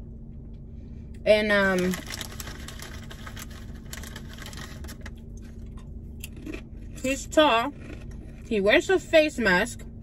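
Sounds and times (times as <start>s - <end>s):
low cabin hum: 0.0s - 10.0s
chewing and wet mouth sounds: 1.9s - 8.5s.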